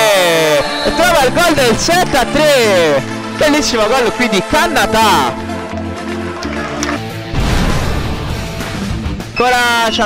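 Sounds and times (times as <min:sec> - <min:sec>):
electronic background music: 0:00.0 - 0:10.0
crashing impact with low rumble: 0:07.3 - 0:09.0.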